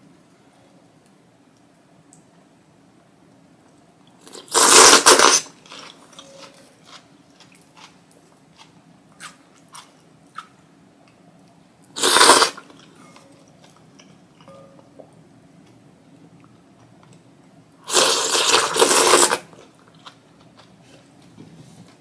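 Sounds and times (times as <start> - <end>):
loud noodle slurps: 4.3 - 5.6, 12.0 - 12.7, 17.9 - 19.5.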